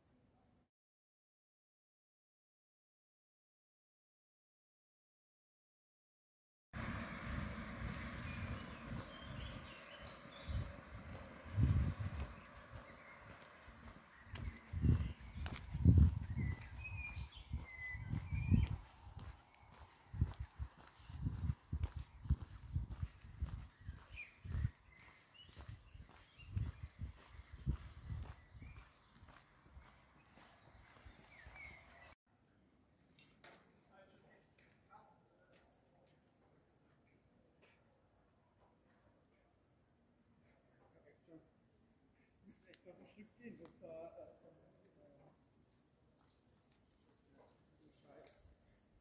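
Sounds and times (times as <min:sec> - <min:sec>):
faint road noise: 0:06.8 - 0:32.2
bird chirps: 0:06.9 - 0:32.2.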